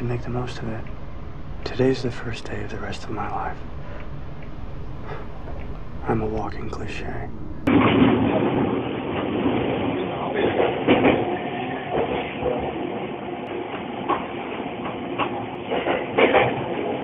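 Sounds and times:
train carriage rumble and rattle: 0:00.0 - 0:17.0.

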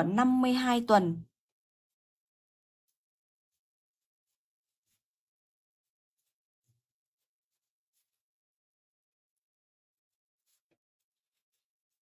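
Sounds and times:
pen scratching on paper: 0:02.9 - 0:05.1, 0:05.8 - 0:08.2, 0:10.4 - 0:12.0.

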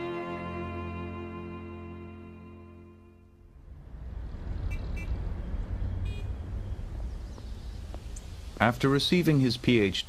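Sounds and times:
bowed string music: 0:00.0 - 0:03.5
street traffic rumble: 0:00.0 - 0:10.0
car horn tooting: 0:06.0 - 0:06.4.

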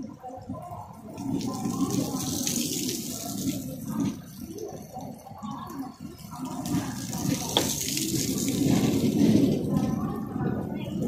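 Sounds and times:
water hissing and splashing: 0:00.8 - 0:10.4.

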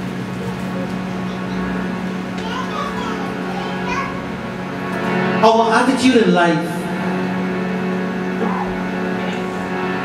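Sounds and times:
harmonium drone: 0:00.0 - 0:10.0
faint children's voices: 0:00.1 - 0:04.6.

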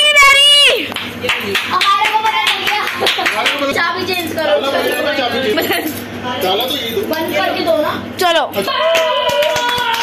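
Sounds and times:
children talking: 0:00.0 - 0:10.0
hand clapping: 0:00.9 - 0:03.7, 0:08.8 - 0:10.0.

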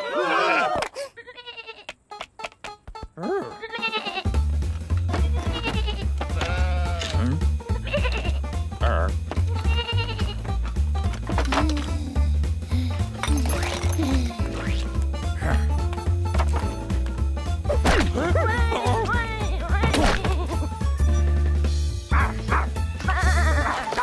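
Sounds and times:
cartoon sheep bleats: 0:03.3 - 0:04.3, 0:05.4 - 0:10.4
mumbled character vocal sounds: 0:07.1 - 0:07.5.

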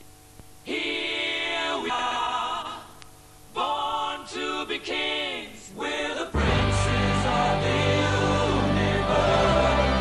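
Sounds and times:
choir singing: 0:00.7 - 0:02.8, 0:03.6 - 0:10.0.

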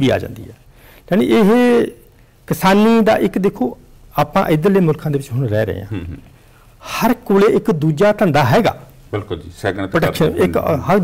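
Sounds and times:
man talking: 0:00.0 - 0:11.0.

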